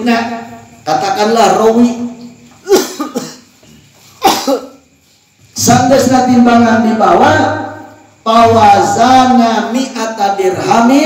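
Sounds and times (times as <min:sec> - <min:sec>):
man coughing: 0:02.6 - 0:03.6, 0:04.2 - 0:04.8.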